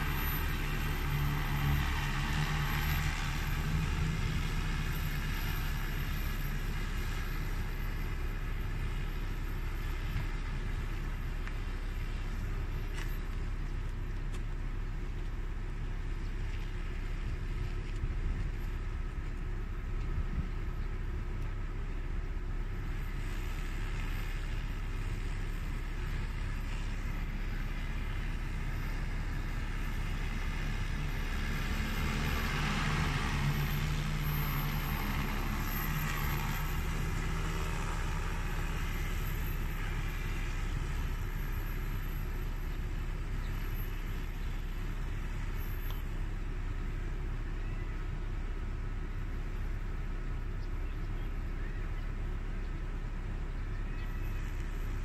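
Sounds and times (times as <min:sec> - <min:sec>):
drone propeller hum: 0:00.0 - 0:55.0
steady low rumble: 0:00.0 - 0:55.0.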